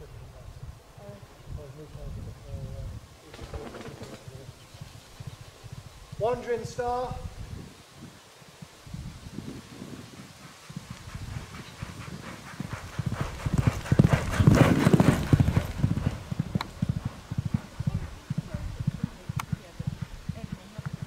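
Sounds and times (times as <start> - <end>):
horse hoofbeats on sand: 9.4 - 21.0.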